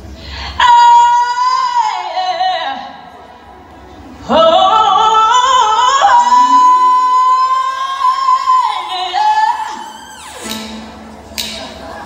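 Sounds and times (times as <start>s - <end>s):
woman singing a high note: 5.0s - 10.9s.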